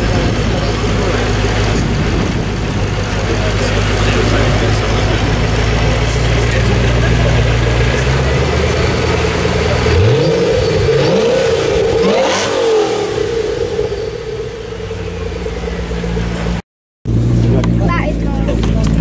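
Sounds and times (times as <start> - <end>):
crowd voices: 0.0 - 16.6, 17.3 - 19.0
car engine revving and idling: 0.0 - 19.0.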